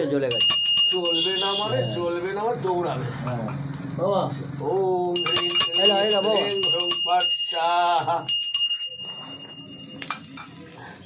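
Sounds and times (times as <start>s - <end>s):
wood fire crackling: 0.0s - 11.0s
high ringing tone: 0.3s - 2.5s, 5.2s - 10.2s.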